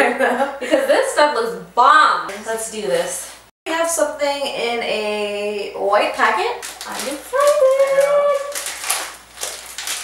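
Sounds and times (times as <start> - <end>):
snack packet crinkling: 6.6 - 10.0.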